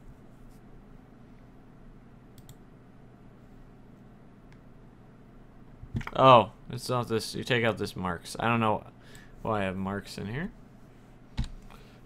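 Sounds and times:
low steady hum: 0:00.0 - 0:12.0
faint computer clicks: 0:02.3 - 0:02.6.

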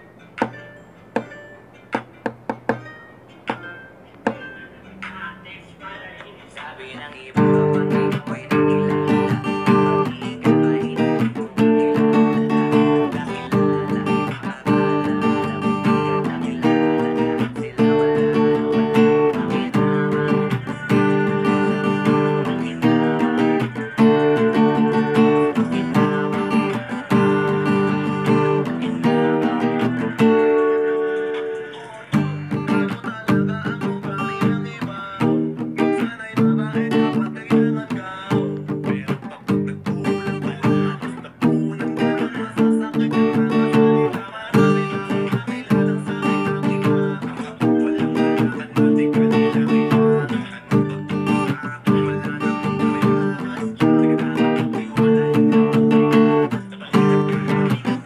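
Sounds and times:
acoustic guitar strumming: 0:00.0 - 0:58.0.

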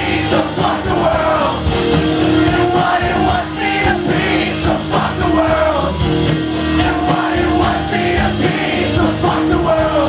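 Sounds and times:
man singing: 0:00.0 - 0:01.7, 0:02.3 - 0:06.1, 0:06.7 - 0:10.0
drums: 0:00.0 - 0:10.0
strummed acoustic guitars: 0:00.0 - 0:10.0.

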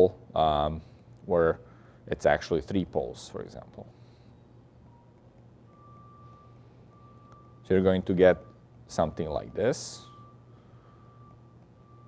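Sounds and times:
steady low hum: 0:00.0 - 0:12.0
faint high-pitched tone: 0:04.8 - 0:12.0.

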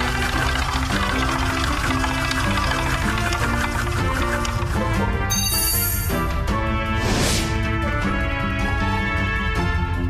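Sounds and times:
slot game music: 0:00.0 - 0:10.0.

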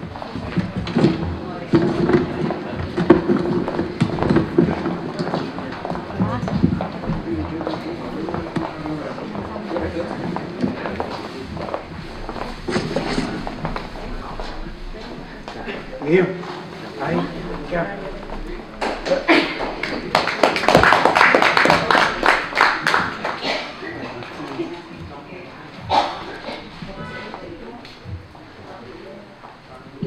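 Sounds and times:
indistinct group talk: 0:00.0 - 0:30.0
footsteps on hard floor: 0:00.1 - 0:20.1
people laughing: 0:18.8 - 0:25.0.

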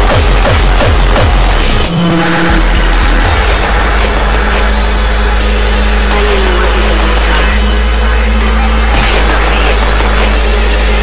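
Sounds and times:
pounding kick-drum beat: 0:00.0 - 0:11.0
sustained low drone: 0:00.0 - 0:11.0.

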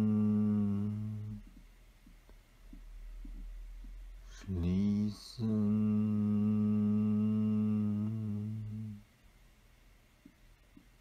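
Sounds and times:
low voice humming: 0:00.0 - 0:01.6, 0:04.2 - 0:09.1.

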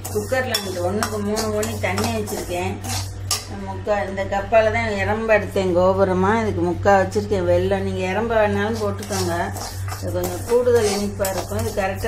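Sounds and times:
dry rice grains stirred: 0:00.0 - 0:03.5, 0:08.7 - 0:12.0
ladle scraping metal pot: 0:00.0 - 0:03.6, 0:08.6 - 0:12.0.

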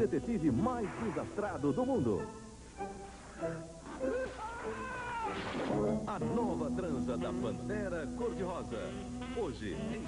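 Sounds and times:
man screaming high-pitched: 0:04.2 - 0:05.4.

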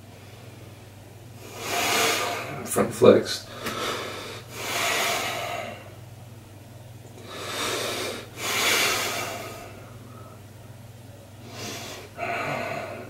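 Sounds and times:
man breathing hard: 0:01.4 - 0:02.7, 0:03.5 - 0:06.0, 0:07.2 - 0:10.4, 0:11.4 - 0:13.0.

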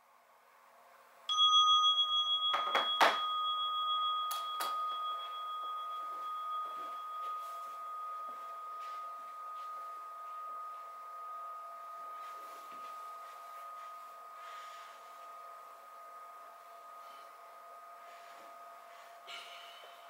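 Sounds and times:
bell ringing: 0:01.3 - 0:17.2.

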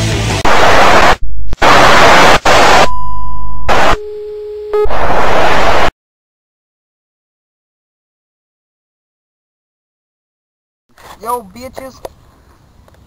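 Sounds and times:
rock music: 0:00.0 - 0:01.0
loud static hiss: 0:00.0 - 0:02.9, 0:03.7 - 0:04.0, 0:04.8 - 0:05.9
electronic beeping tones: 0:02.8 - 0:05.1.

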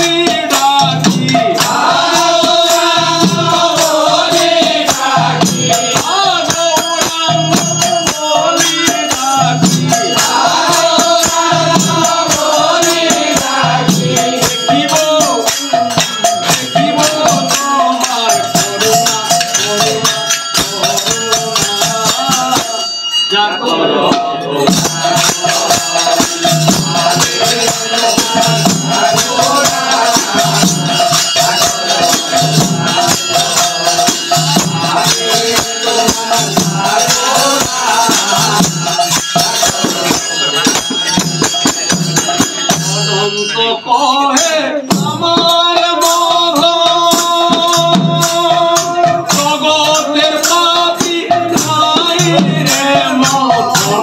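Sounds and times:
hand cymbals clashing: 0:00.0 - 0:54.0
men singing in chorus: 0:00.0 - 0:54.0.

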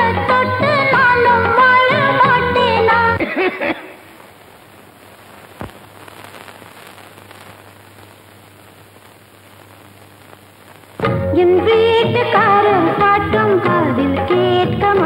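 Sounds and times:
music with singing: 0:00.0 - 0:03.2, 0:11.1 - 0:15.0
soundtrack hiss: 0:00.0 - 0:13.5.

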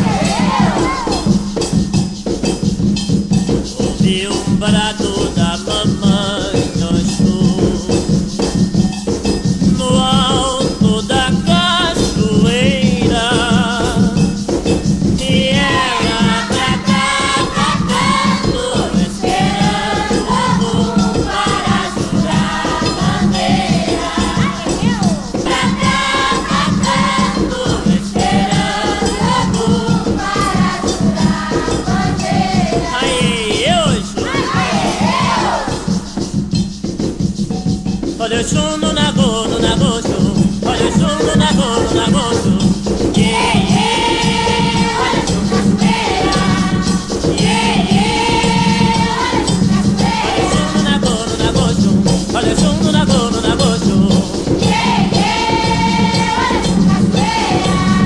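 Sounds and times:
choir singing in unison: 0:00.0 - 0:01.7, 0:15.2 - 0:36.3, 0:39.4 - 0:58.0
hand drums beating: 0:00.0 - 0:58.0
rattle shaking: 0:00.0 - 0:58.0.

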